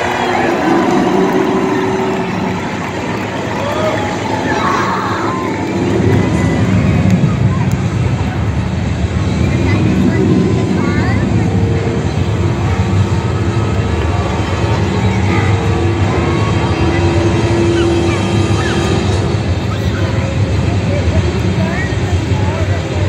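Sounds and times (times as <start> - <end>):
crowd voices: 0.0 - 23.0
heavy machine engine running: 0.0 - 23.0.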